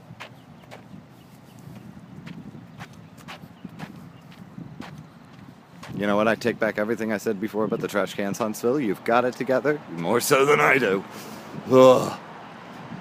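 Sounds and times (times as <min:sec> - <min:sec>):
footsteps on pavement: 0:00.0 - 0:06.9, 0:07.7 - 0:08.8.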